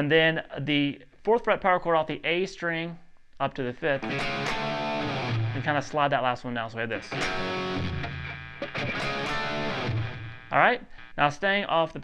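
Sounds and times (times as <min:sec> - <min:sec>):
electric guitar power chords: 0:04.0 - 0:05.8, 0:07.0 - 0:10.6.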